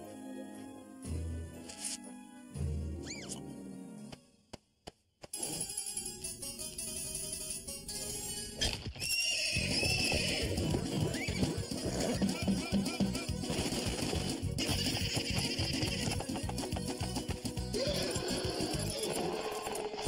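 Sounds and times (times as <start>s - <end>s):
cartoon soundtrack music: 0.0s - 4.4s, 9.6s - 20.0s.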